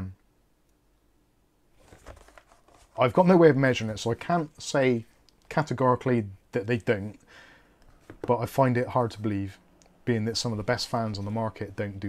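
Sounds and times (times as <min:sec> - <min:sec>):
packaging rustling: 0:01.8 - 0:03.0.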